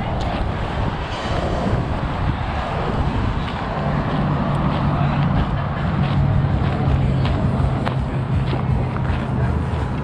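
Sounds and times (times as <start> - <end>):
low rumbling noise: 0.0 - 10.0.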